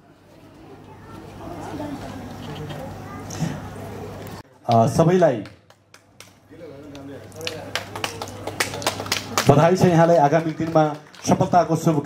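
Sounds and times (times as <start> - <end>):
people clapping: 4.7 - 12.0.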